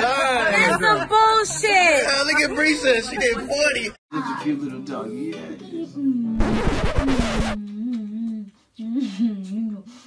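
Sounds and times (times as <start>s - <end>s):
person humming: 5.8s - 9.9s.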